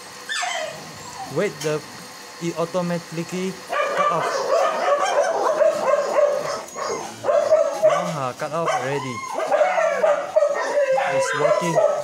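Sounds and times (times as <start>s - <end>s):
dog whining and yipping: 0.3s - 1.4s, 3.9s - 8.1s, 8.7s - 12.0s.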